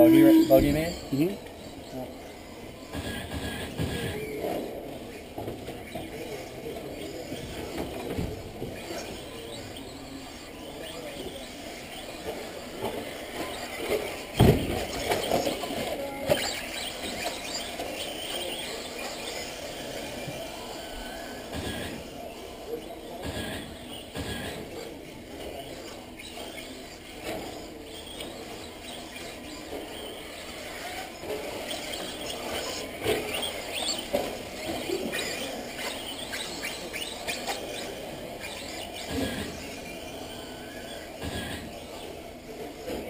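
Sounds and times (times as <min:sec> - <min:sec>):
rc car motor whine: 0:00.0 - 0:43.0.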